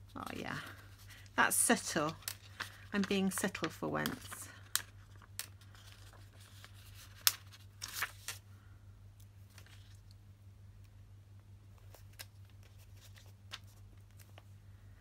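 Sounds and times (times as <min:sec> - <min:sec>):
steady low hum: 0:00.0 - 0:15.0
plastic sticker sheet crinkling: 0:00.1 - 0:08.4, 0:09.5 - 0:10.1, 0:11.8 - 0:14.5.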